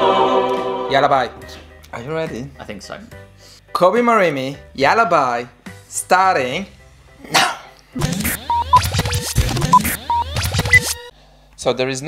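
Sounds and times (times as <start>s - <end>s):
short beeps: 8.3s - 11.0s.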